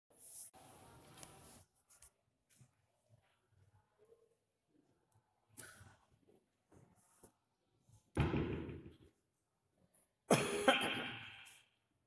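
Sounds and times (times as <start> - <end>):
man clearing his throat: 10.3 - 11.5.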